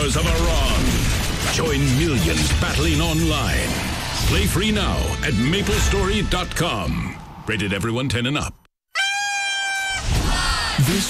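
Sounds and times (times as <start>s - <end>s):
music: 4.6s - 6.6s
party horn blown: 8.9s - 10.0s
people cheering: 9.0s - 11.0s.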